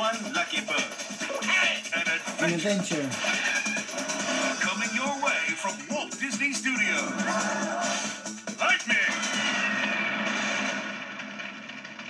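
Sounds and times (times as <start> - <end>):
cartoon fiery blast and fireworks: 9.0 - 12.0.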